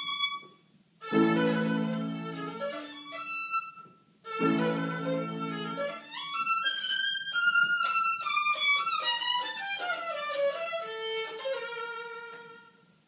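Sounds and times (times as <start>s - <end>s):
solo violin melody: 0.0s - 12.9s.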